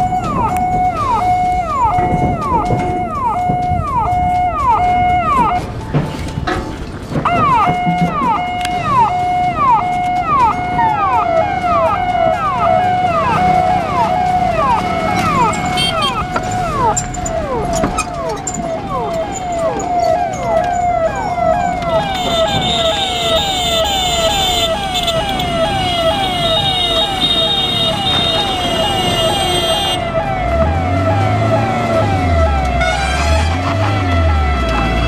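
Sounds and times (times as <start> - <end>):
ambulance siren: 0.0 - 6.4, 7.1 - 35.0.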